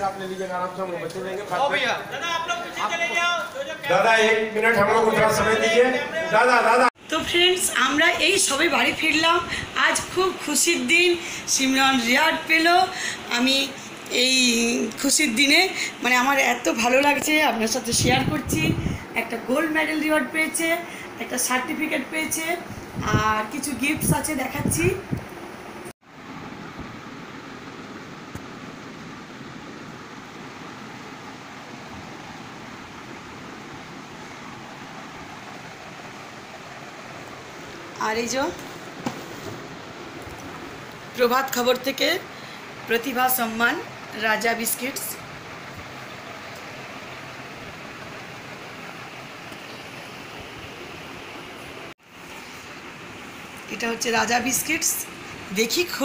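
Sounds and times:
steady background hiss: 0.0s - 56.0s.

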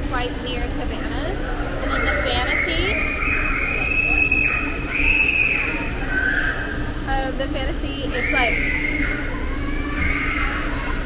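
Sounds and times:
steady low hum: 0.0s - 11.0s
children shrieking: 1.5s - 7.0s, 8.0s - 11.0s.

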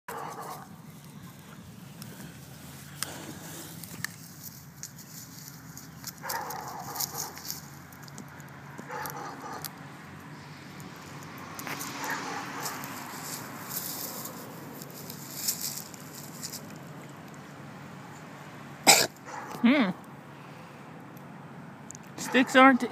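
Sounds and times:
rustling in grass: 0.2s - 8.2s, 12.6s - 17.4s
dog gnawing on wooden stick: 3.0s - 9.8s.

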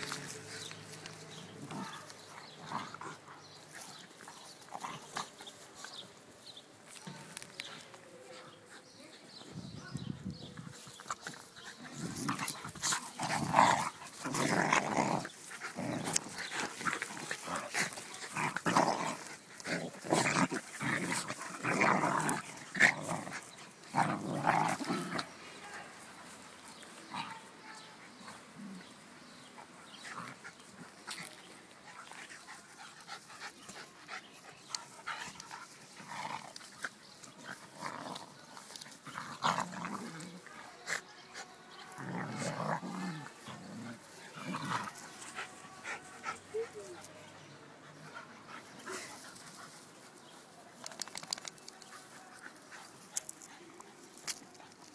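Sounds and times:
dogs growling while play-fighting: 0.0s - 9.4s, 10.3s - 50.3s, 50.9s - 54.9s.

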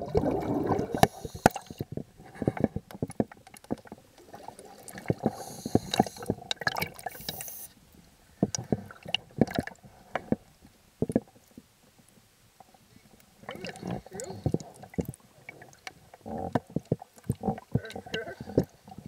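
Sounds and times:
muffled underwater water wash: 0.0s - 19.0s
sharp underwater clicks and pops: 0.1s - 7.6s, 8.4s - 10.4s, 13.5s - 18.8s.

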